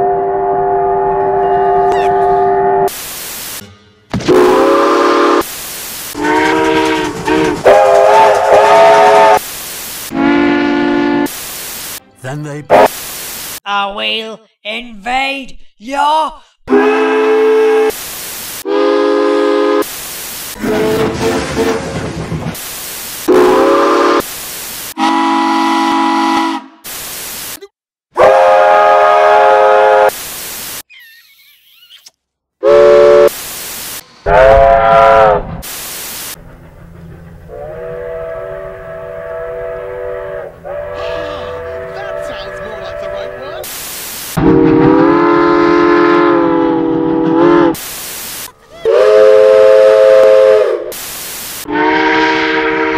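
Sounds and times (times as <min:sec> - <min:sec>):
steam locomotive chime whistle: 0:00.0 - 0:02.9, 0:03.6 - 0:05.5, 0:06.2 - 0:09.4, 0:10.1 - 0:11.3, 0:24.9 - 0:26.7, 0:34.2 - 0:35.4, 0:37.0 - 0:43.6, 0:48.9 - 0:50.9
rough wavering train sound: 0:00.0 - 0:11.3, 0:20.5 - 0:24.4, 0:34.0 - 0:43.6
steam hissing: 0:02.9 - 0:03.6, 0:04.4 - 0:10.4, 0:22.5 - 0:25.0, 0:33.2 - 0:34.2, 0:35.6 - 0:37.9, 0:41.0 - 0:44.4, 0:50.8 - 0:51.7
steam chime whistle blasts: 0:10.1 - 0:11.3.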